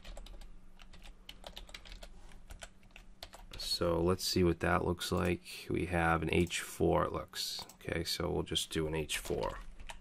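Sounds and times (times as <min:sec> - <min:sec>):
computer keyboard typing: 0:00.0 - 0:03.7, 0:09.1 - 0:10.0.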